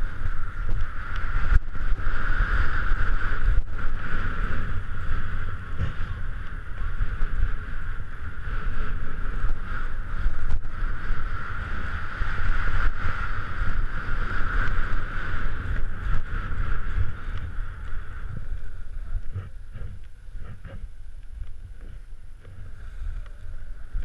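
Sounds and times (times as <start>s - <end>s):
skis scraping over snow: 0.0s - 24.0s
wind on microphone: 0.0s - 24.0s.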